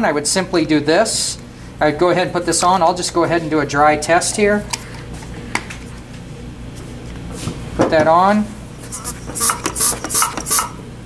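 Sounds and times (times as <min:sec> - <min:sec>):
air hissing: 0:08.8 - 0:10.8
hand pump strokes: 0:08.9 - 0:10.8.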